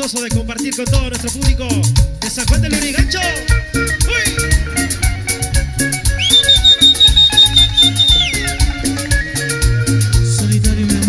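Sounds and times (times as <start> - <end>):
cumbia band playing: 0.0 - 11.0
bass line: 0.9 - 11.0
percussion ticking: 6.2 - 10.0.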